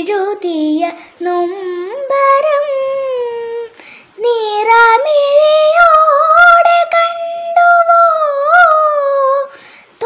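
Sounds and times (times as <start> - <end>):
girl breathing in: 3.7 - 4.2, 9.5 - 10.0.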